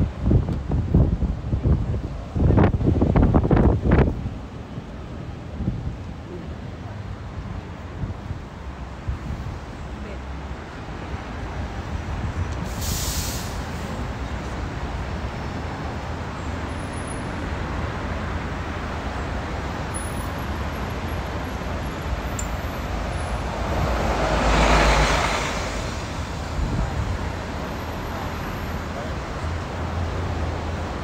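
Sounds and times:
street traffic rumble: 0.0 - 31.0
loud passing vehicle: 20.4 - 31.0.

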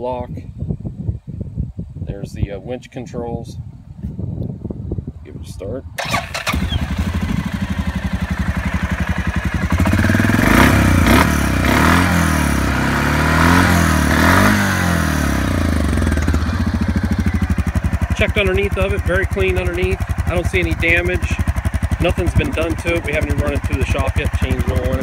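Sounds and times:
engine cranking: 6.0 - 11.2, 15.4 - 25.0
engine idling and revving: 6.0 - 25.0.

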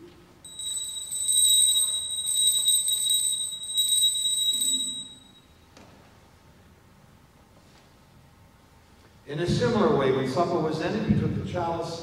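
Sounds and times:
altar bells ringing: 0.4 - 5.5.

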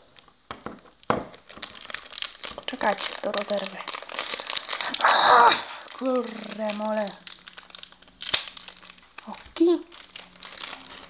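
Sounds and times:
foil packet crinkling: 0.0 - 11.0.

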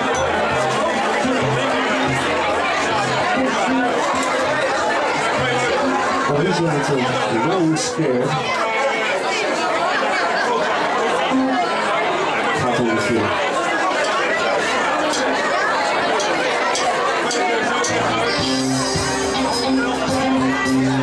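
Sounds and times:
bass notes: 0.0 - 6.5, 17.7 - 21.0
live rock band playing: 0.0 - 6.5, 17.7 - 21.0
loud crowd chatter: 0.0 - 21.0.

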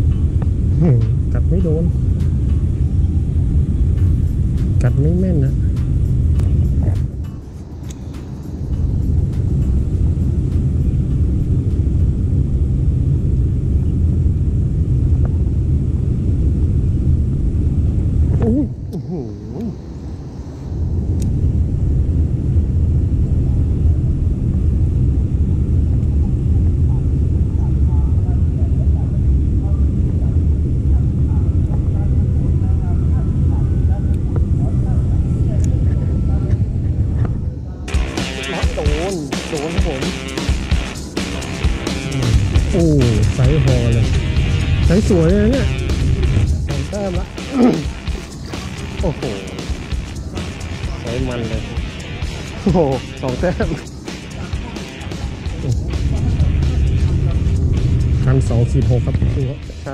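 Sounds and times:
wind buffeting microphone: 0.0 - 37.8.

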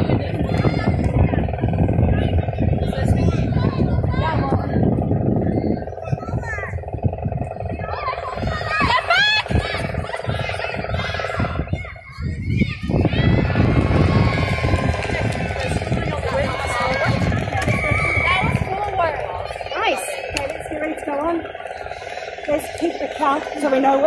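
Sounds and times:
players calling and shouting: 0.0 - 24.0
steady low rumble: 0.0 - 24.0.

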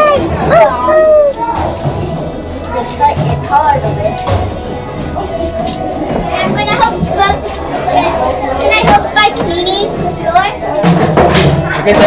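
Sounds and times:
background music: 0.0 - 12.0
children talking and playing: 0.0 - 12.0.

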